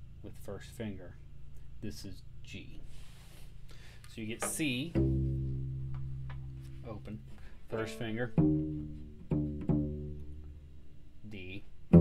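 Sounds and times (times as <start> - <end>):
cello string plucked: 4.4 - 10.8.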